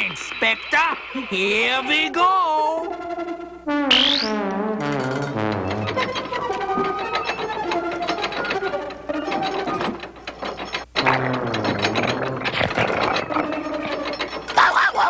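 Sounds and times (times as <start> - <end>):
held music tones: 0.0 - 14.6
clockwork gears ratcheting: 4.8 - 14.6.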